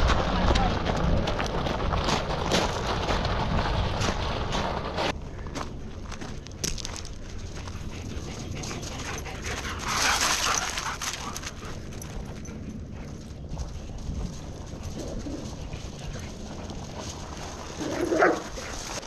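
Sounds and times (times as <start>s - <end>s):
dogs running on gravel: 0.0s - 19.0s.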